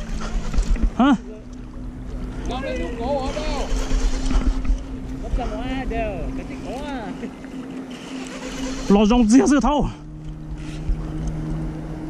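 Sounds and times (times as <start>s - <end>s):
boat motor humming: 0.0s - 12.0s
water and wind rumble: 0.0s - 12.0s.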